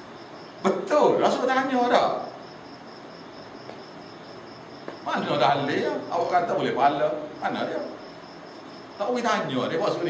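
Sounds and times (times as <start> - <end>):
faint room hiss: 0.0 - 10.0
insect chirping: 0.0 - 10.0.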